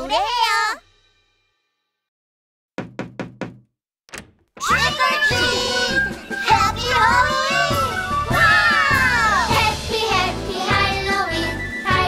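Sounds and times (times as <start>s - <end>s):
quick knocks on door: 2.8s - 4.7s
children shouting: 4.6s - 5.9s, 6.7s - 9.6s.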